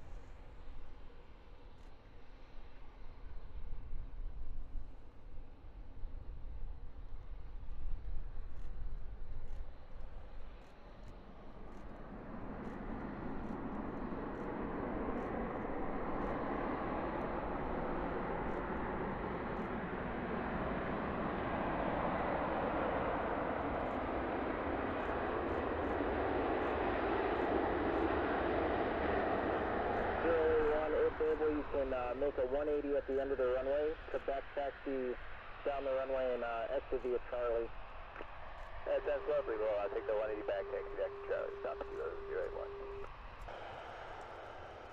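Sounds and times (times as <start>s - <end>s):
jet engine roar: 11.3s - 44.9s.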